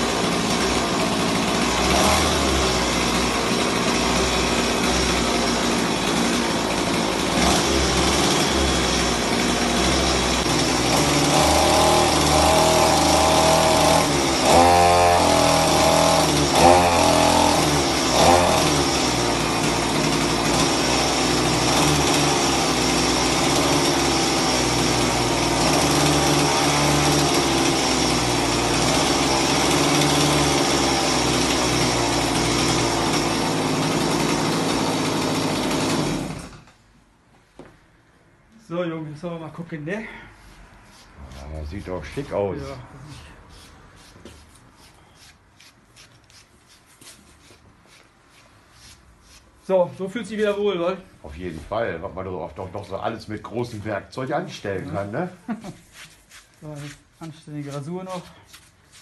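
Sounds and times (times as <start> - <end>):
toy chainsaw engine revving: 0.0 - 36.7.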